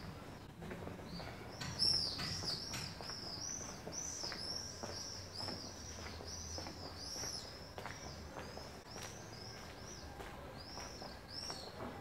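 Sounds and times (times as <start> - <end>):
faint footsteps: 0.0 - 12.0
small bird chirping: 1.1 - 12.0.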